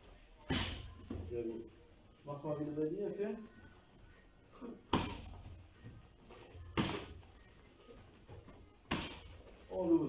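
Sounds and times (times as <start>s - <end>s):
kicks slapping kick pad: 4.9s - 5.4s, 6.8s - 7.2s, 8.9s - 9.3s.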